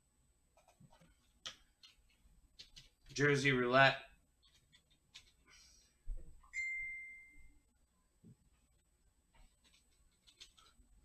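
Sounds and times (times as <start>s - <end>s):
high clear ding: 6.5s - 7.6s.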